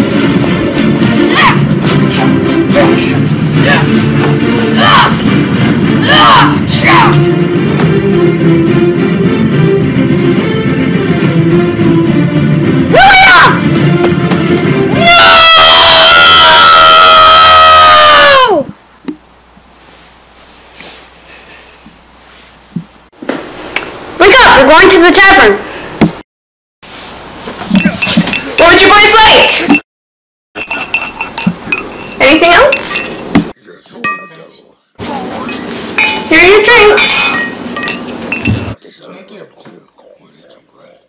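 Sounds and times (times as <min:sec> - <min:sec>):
indistinct voices: 0:01.2 - 0:07.3
glasses and dishes clinking: 0:27.7 - 0:28.6, 0:30.6 - 0:33.2, 0:34.0 - 0:34.5, 0:35.4 - 0:36.3, 0:36.9 - 0:38.8.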